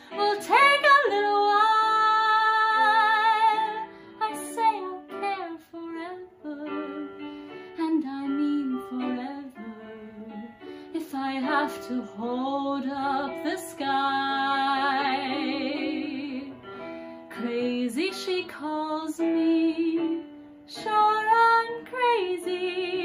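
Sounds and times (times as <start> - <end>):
woman singing: 0.0 - 16.6, 17.3 - 23.0.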